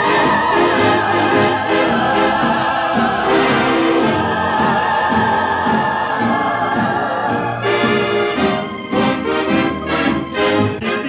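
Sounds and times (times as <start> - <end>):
orchestra playing long held notes: 0.0 - 11.0.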